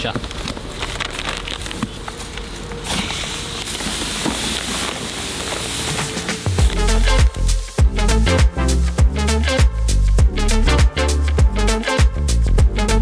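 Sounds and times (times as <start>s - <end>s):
music with heavy bass beat: 6.0s - 13.0s.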